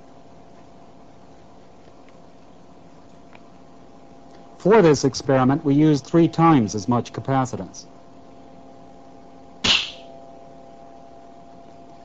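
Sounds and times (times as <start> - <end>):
sharp electrical bang: 9.6 - 10.1.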